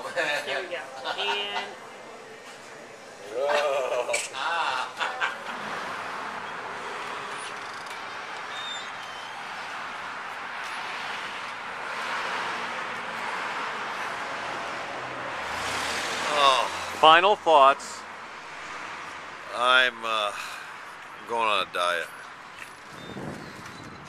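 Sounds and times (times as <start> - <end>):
steady background noise: 0.0 - 23.9
man speaking: 19.5 - 20.4, 21.2 - 22.1.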